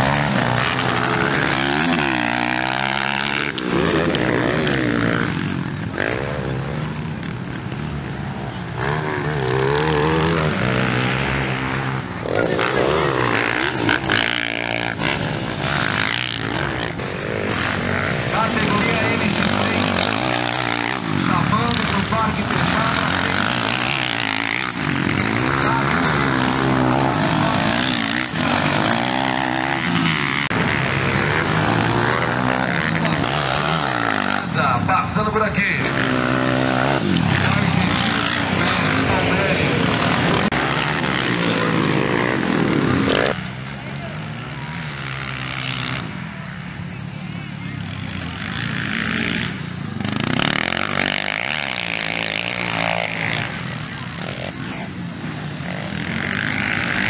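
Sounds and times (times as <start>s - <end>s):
motocross bike engines revving: 0.0s - 57.0s.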